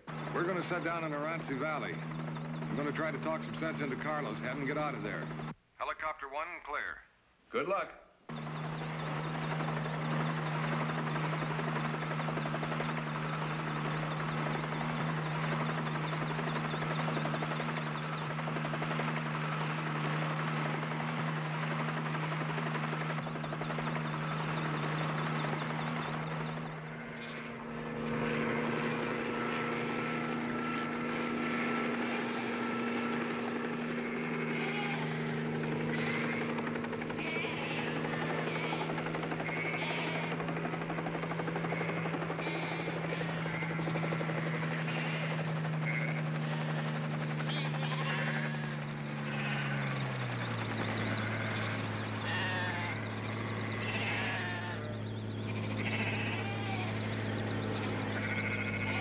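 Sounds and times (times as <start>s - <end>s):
helicopter engine and rotor: 0.0s - 5.6s, 8.3s - 59.0s
sheep bleating: 34.0s - 35.2s, 35.9s - 36.5s, 37.2s - 40.4s, 41.7s - 43.9s, 44.6s - 46.8s, 47.5s - 50.0s, 51.2s - 57.1s, 58.1s - 59.0s.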